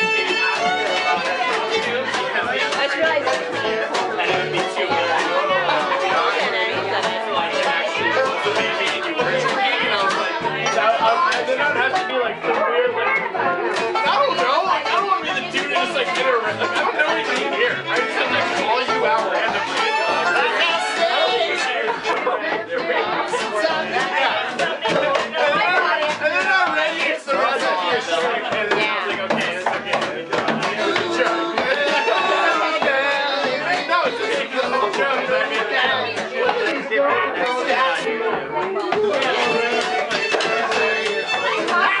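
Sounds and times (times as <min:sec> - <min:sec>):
acoustic guitar: 0:00.0 - 0:42.0
fiddle: 0:00.0 - 0:42.0
men singing: 0:00.0 - 0:42.0
people chattering: 0:00.0 - 0:42.0
plucked upright bass: 0:00.0 - 0:42.0.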